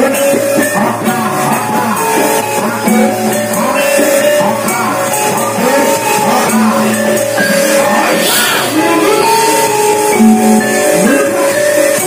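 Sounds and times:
held instrument tones: 0.0s - 12.0s
percussion strikes: 0.0s - 12.0s
person singing: 0.0s - 12.0s.

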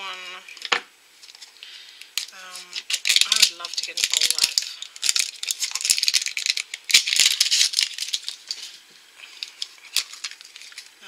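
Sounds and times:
plastic capsule rattling: 2.2s - 8.7s, 9.4s - 11.0s.

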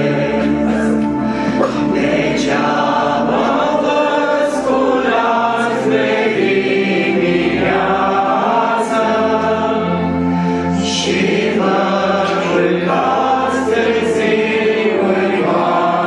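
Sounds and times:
electronic keyboard: 0.0s - 16.0s
group singing a hymn: 0.0s - 16.0s
piano accordion: 0.0s - 16.0s.

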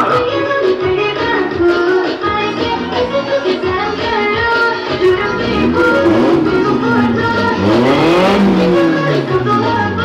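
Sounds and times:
music: 0.0s - 10.0s
car engine revving: 5.0s - 10.0s.

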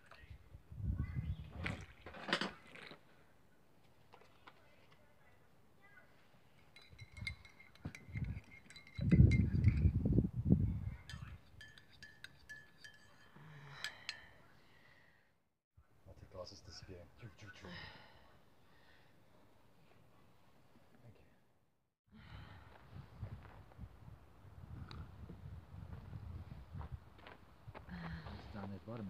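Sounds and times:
teaspoon clinking in ceramic mug: 6.6s - 10.0s, 11.0s - 14.3s.

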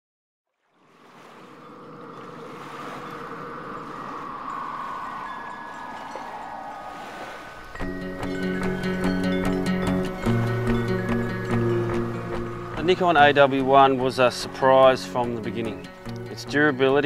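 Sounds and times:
rushing bubbling water: 0.5s - 16.3s
music with plucked notes: 7.8s - 17.0s.

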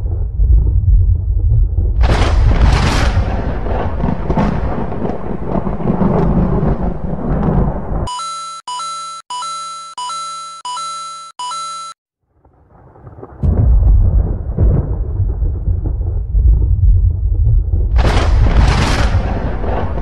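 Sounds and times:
thunder rumble: 0.0s - 8.1s, 12.3s - 20.0s.

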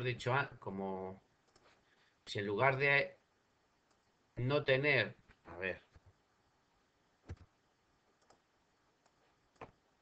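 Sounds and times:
computer mouse clicks: 1.4s - 1.8s, 7.3s - 7.5s, 8.2s - 9.8s.

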